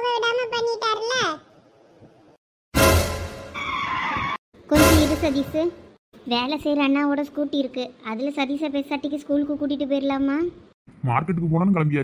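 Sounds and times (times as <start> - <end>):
background music: 2.8 - 3.6, 4.7 - 5.9.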